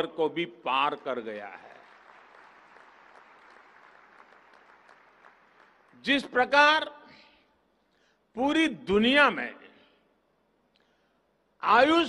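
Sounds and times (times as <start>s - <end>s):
audience applause: 1.6s - 6.0s.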